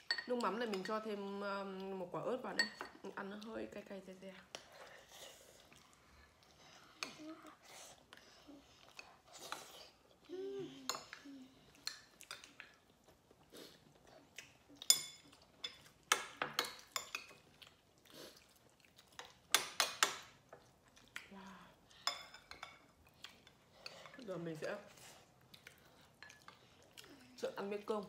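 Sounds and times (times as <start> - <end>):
spoons clinking against ceramic bowls: 0.0 - 1.1, 2.5 - 3.0, 14.8 - 17.4, 22.0 - 22.9.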